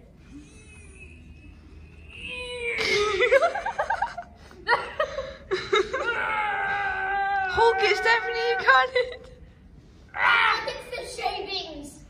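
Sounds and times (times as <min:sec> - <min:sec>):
people laughing: 0:02.8 - 0:06.4.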